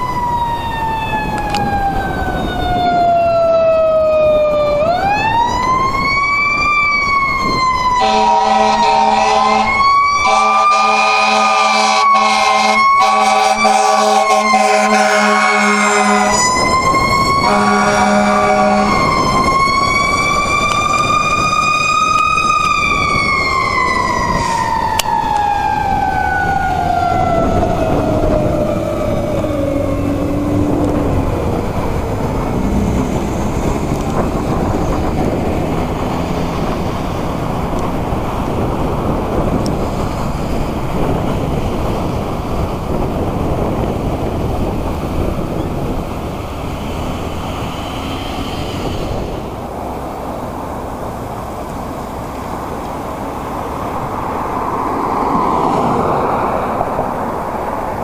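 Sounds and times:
fire engine siren wailing: 0.0 - 58.0
air horn blasts: 7.9 - 16.7, 17.3 - 19.2.

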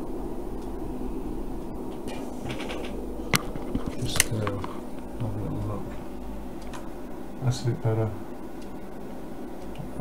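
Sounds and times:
electronics hum with fan hiss: 0.0 - 10.0
sharp click: 1.9 - 5.0.

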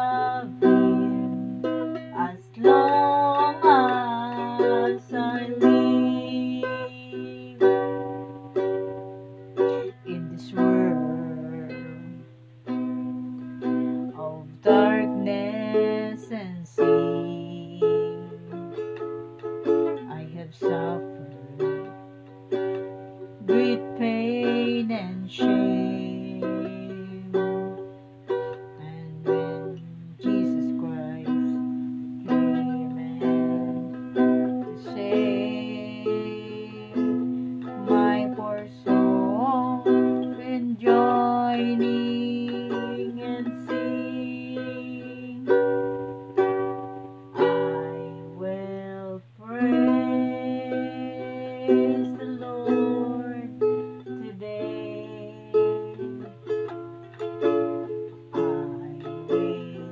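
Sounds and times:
woman singing: 0.0 - 9.0, 9.6 - 12.3, 13.6 - 59.9
ukulele strummed and plucked: 0.0 - 59.9.

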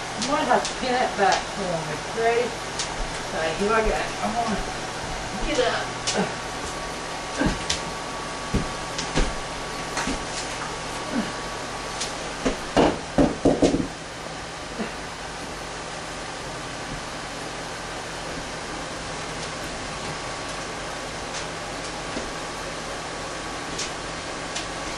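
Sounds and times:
room tone hiss: 0.0 - 24.9.

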